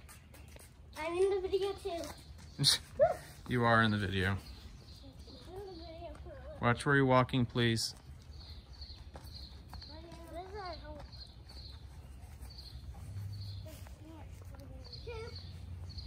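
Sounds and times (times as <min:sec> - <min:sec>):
faint children's voices: 0:04.7 - 0:07.0, 0:08.7 - 0:16.0.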